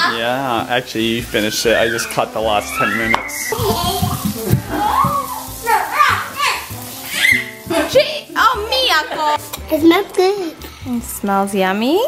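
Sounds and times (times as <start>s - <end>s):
background music: 0.0s - 12.0s
child squealing: 1.4s - 7.6s
small children's voices: 1.7s - 11.0s.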